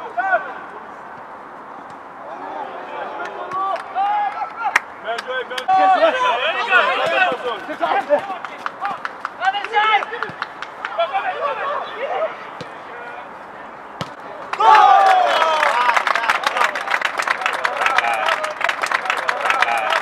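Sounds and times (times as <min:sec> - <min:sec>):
footballers calling out: 0:00.0 - 0:20.0
sharp ball kick: 0:14.0 - 0:14.2
rapid hand clapping: 0:14.5 - 0:20.0
shouts of celebration: 0:14.5 - 0:20.0.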